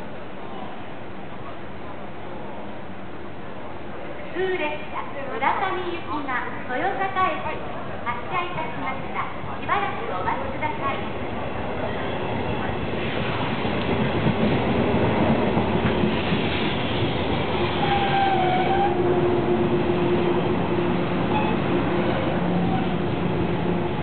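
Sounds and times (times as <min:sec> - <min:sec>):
electric train passing: 0:00.0 - 0:24.0.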